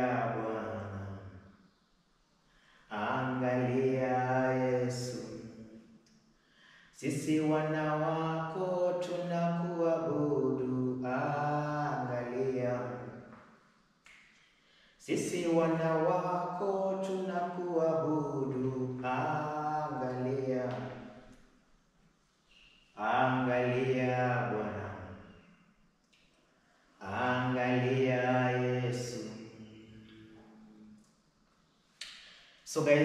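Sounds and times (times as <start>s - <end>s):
man singing a long held note: 0.0s - 1.3s, 2.9s - 5.6s, 7.0s - 13.2s, 15.0s - 21.0s, 23.0s - 25.2s, 27.0s - 30.8s.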